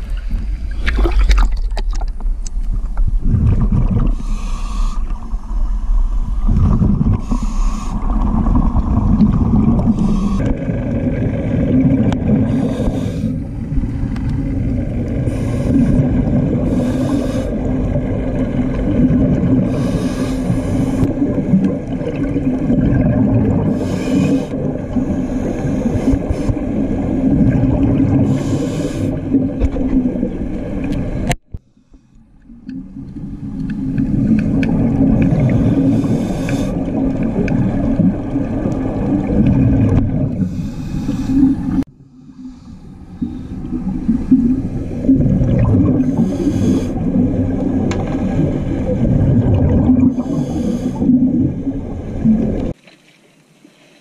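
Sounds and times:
scuba exhaust bubbles: 0:00.0 - 0:31.6, 0:32.4 - 0:52.8
underwater low hum and rumble: 0:00.0 - 0:54.0.

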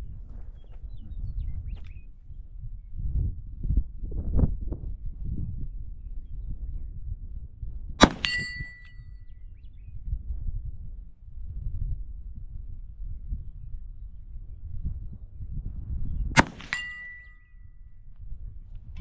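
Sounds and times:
revolver shots: 0:08.0 - 0:08.9, 0:16.4 - 0:17.3
steel target ringing: 0:08.0 - 0:09.0, 0:16.4 - 0:17.4.

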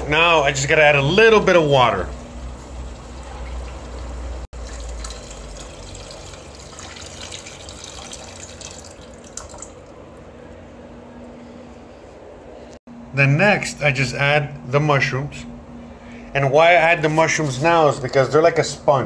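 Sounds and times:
water pouring into a saucepan: 0:02.9 - 0:09.9.

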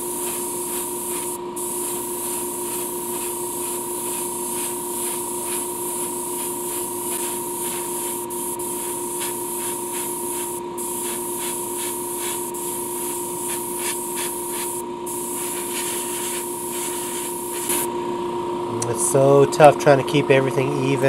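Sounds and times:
airbrush spraying hiss: 0:00.0 - 0:17.9
steady hum: 0:00.0 - 0:21.0.

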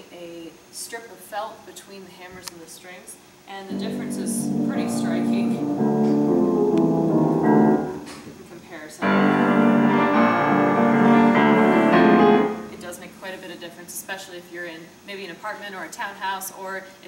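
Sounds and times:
upright piano playing: 0:03.7 - 0:08.1, 0:09.0 - 0:13.2.

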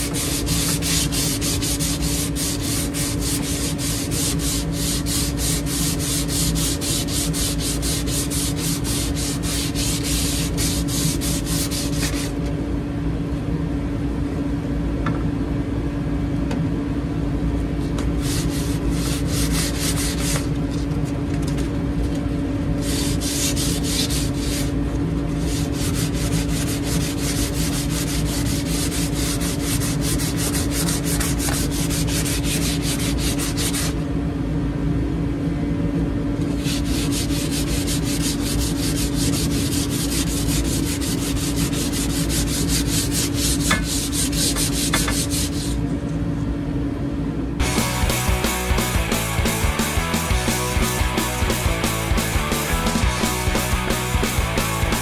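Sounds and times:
sandpaper rubbing wood: 0:00.0 - 0:12.4, 0:18.2 - 0:20.5, 0:22.8 - 0:24.8, 0:25.4 - 0:34.0, 0:36.5 - 0:45.8, 0:47.6 - 0:55.0.

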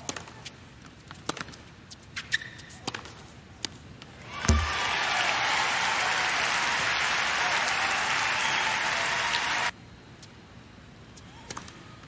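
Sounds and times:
shoe squeak on court: 0:01.9 - 0:03.1
tennis ball struck and bouncing: 0:04.4 - 0:04.8.

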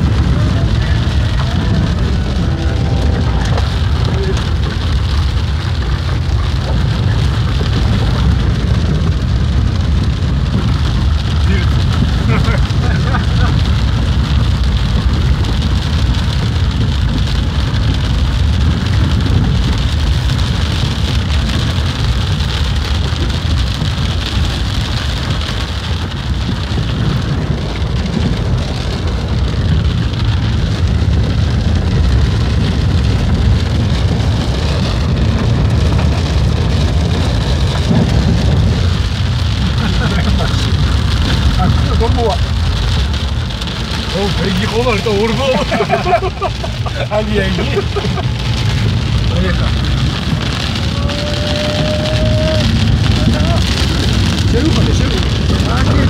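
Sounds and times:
car driving rumble: 0:00.0 - 0:56.0
heavy rain on car roof: 0:00.0 - 0:56.0.

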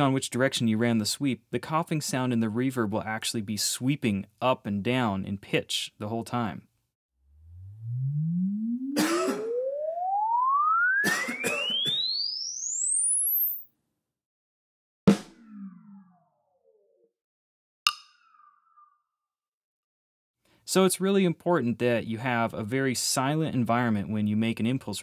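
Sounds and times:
rising sine-wave sweep: 0:07.2 - 0:13.7
person coughing: 0:09.0 - 0:09.5, 0:11.1 - 0:11.7
drumstick clicks with reverb: 0:17.9 - 0:18.5.

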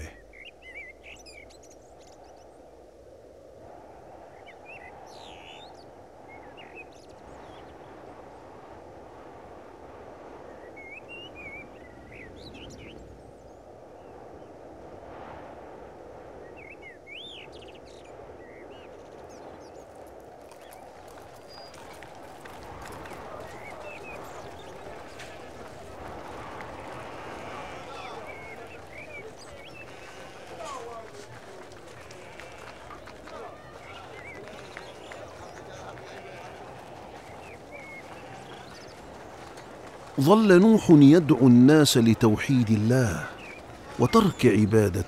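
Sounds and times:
small birds chirping: 0:00.0 - 0:02.7, 0:04.3 - 0:08.2, 0:10.4 - 0:14.5, 0:16.4 - 0:45.0
wind rush: 0:02.6 - 0:32.1.

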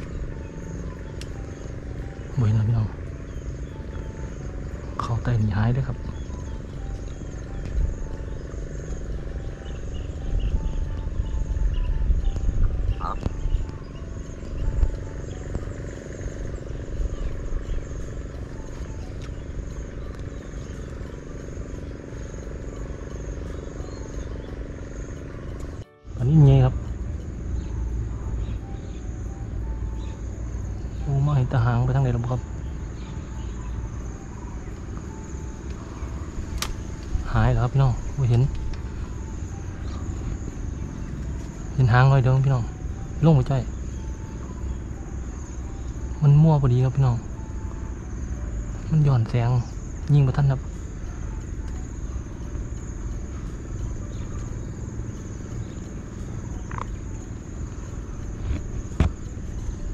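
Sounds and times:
insects chirping: 0:00.0 - 0:59.9
low rumble: 0:00.0 - 0:59.9.

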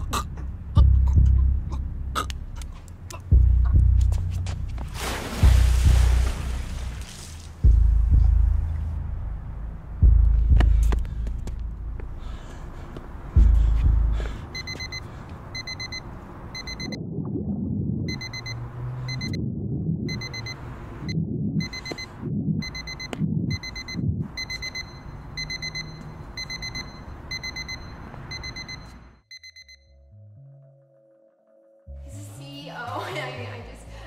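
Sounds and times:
digital watch alarm beeping: 0:14.5 - 0:17.0, 0:18.1 - 0:30.1.

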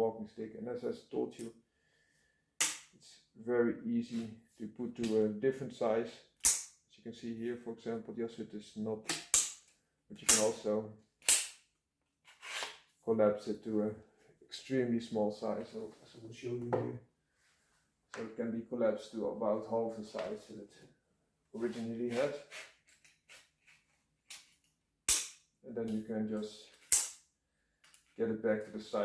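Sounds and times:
soft scraping: 0:21.6 - 0:22.7
walking stick soft rubs: 0:21.6 - 0:23.9.

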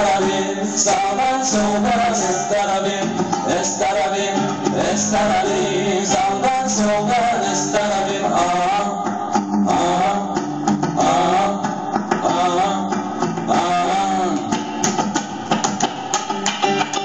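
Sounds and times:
guitar melody: 0:00.0 - 0:17.0.

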